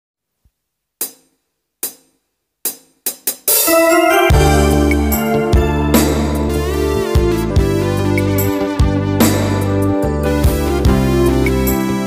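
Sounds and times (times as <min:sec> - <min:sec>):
drum and cymbal hits: 0:02.7 - 0:09.8.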